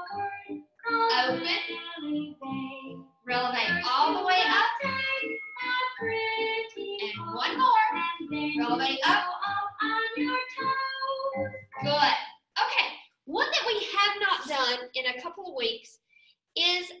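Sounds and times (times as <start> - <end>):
children's song with vocals: 0.0 - 12.3, 13.3 - 15.8.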